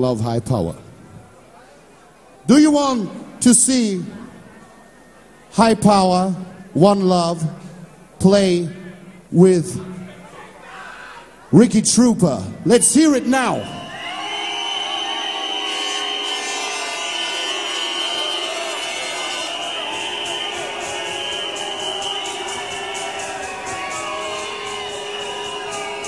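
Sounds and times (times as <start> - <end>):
crowd shouting and cheering: 12.4 - 26.0
long held high tones: 13.2 - 26.0.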